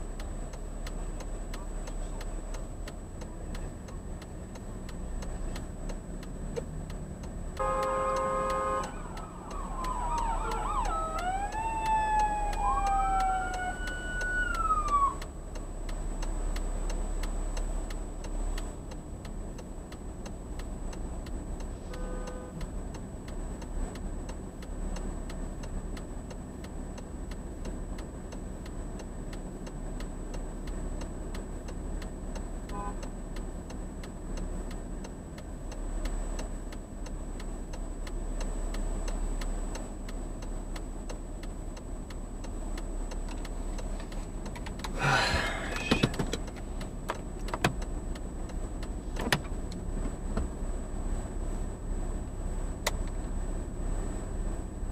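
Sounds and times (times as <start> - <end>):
faint ticking: 0.0 - 53.8
traffic rumble: 0.0 - 54.9
fire truck air horn blast: 7.6 - 9.8, 21.8 - 22.6, 32.7 - 33.0
siren wailing: 8.7 - 15.3.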